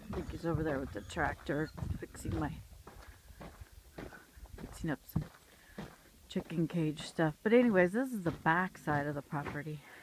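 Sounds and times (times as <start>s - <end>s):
woman's voice: 0.0s - 2.6s, 4.6s - 5.3s, 6.3s - 10.0s
soft footsteps on dirt path: 0.0s - 10.0s.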